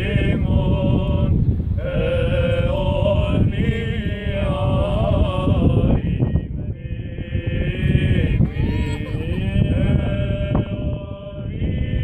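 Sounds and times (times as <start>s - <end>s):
wind rumble on microphone: 0.0s - 12.0s
man chanting: 8.3s - 11.3s.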